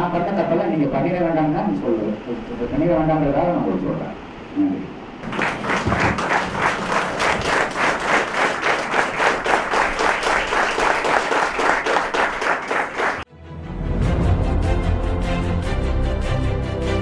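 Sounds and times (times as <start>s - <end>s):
crowd clapping in rhythm: 5.2s - 13.3s
music: 13.3s - 17.0s.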